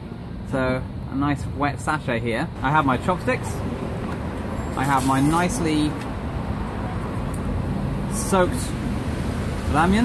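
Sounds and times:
rumble of cars driving past: 0.0s - 10.0s.

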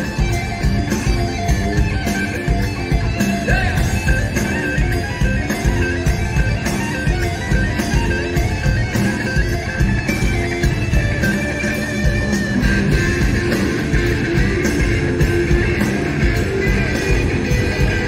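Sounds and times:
driving bass: 0.0s - 18.0s
drum groove: 0.0s - 18.0s
electric guitar: 0.0s - 18.0s.

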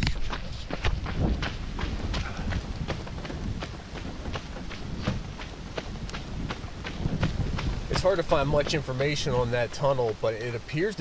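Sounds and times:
running footsteps: 0.0s - 11.0s.

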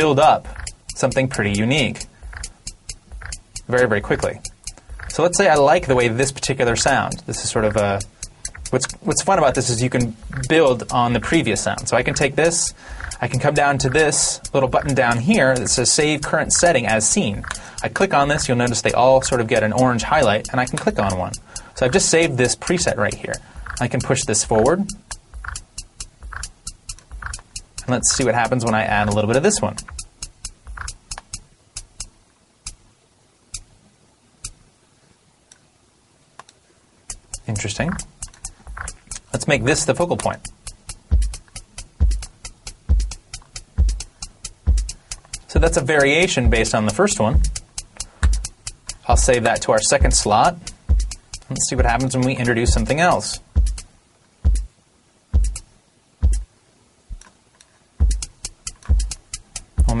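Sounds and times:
drum machine hits: 0.0s - 32.1s, 37.1s - 54.7s, 55.4s - 56.5s, 58.0s - 60.0s
short high clicks: 0.0s - 32.8s, 37.0s - 53.9s, 58.0s - 60.0s
kick drum: 2.2s - 3.5s, 4.5s - 5.2s, 24.5s - 28.2s, 29.8s - 31.1s, 40.5s - 45.8s, 46.5s - 46.7s, 47.4s - 47.6s, 48.2s - 49.4s, 50.0s - 52.0s, 52.7s - 54.7s, 55.4s - 56.5s, 58.0s - 60.0s.

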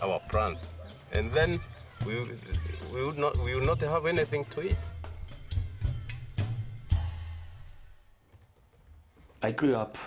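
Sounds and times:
music drum beat: 0.3s - 7.6s.

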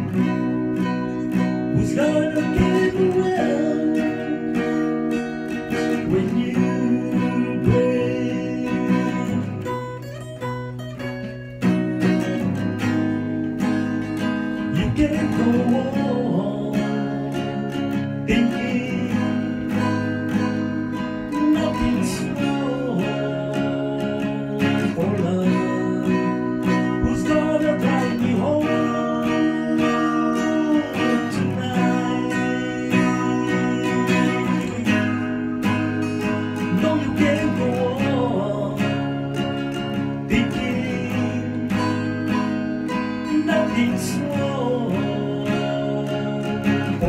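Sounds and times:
acoustic guitar strummed and picked: 0.0s - 47.0s.

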